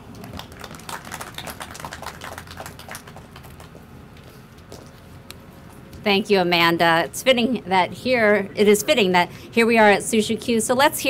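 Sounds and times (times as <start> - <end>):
crowd applauding: 0.0 - 3.8.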